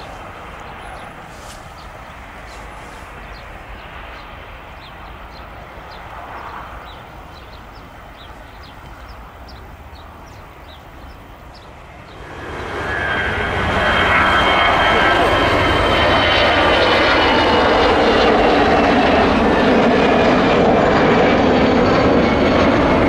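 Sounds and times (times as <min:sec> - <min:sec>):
jet engines at takeoff thrust: 0:00.0 - 0:23.0
high whining tones: 0:12.0 - 0:17.5.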